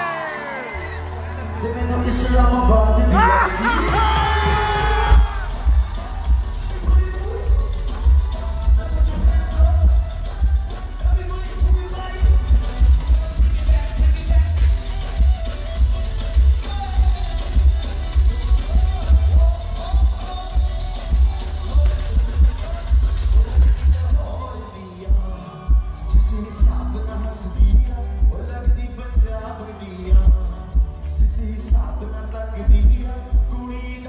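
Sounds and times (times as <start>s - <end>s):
loud live pop band music: 0.0s - 34.0s
pulsing bass beat: 2.1s - 34.0s.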